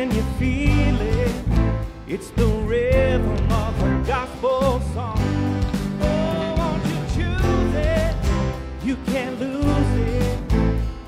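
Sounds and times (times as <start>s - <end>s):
acoustic guitar: 0.0s - 11.0s
drums: 0.0s - 11.0s
man singing: 0.0s - 11.0s.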